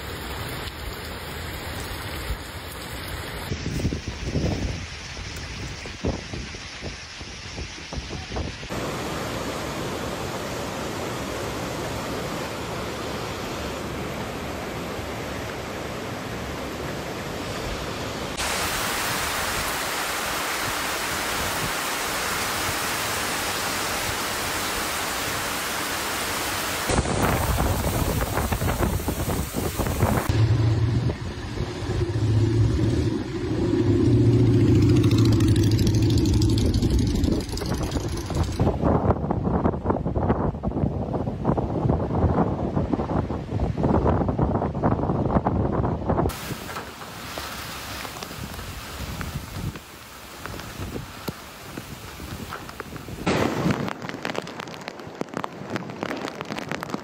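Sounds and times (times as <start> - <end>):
heavy rain pouring on trees: 0.0 - 30.5, 46.3 - 57.0
vehicle engine humming: 30.1 - 38.7.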